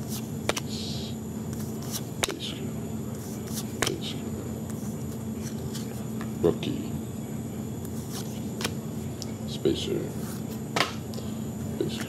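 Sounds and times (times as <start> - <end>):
cards clicking and sliding: 0.1 - 0.7, 1.6 - 2.4, 3.2 - 4.0, 4.7 - 6.3, 7.9 - 8.8.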